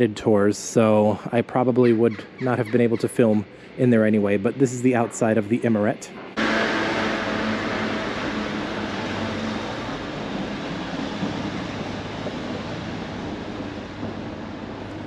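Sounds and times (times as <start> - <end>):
vehicle engine hum and tyre noise: 0.0 - 15.0.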